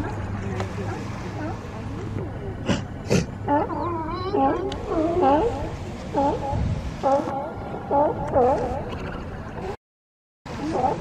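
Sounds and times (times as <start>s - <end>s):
sea lions barking: 2.7s - 9.7s, 10.5s - 11.0s
sea lions wavering calls: 3.4s - 9.8s, 10.5s - 11.0s.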